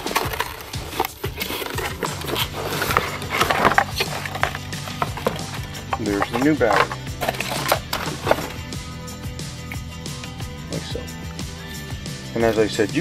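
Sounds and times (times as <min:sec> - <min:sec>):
cardboard box being handled: 0:00.0 - 0:08.6
packing rustling and scraping: 0:00.0 - 0:08.8
background music: 0:00.0 - 0:13.0.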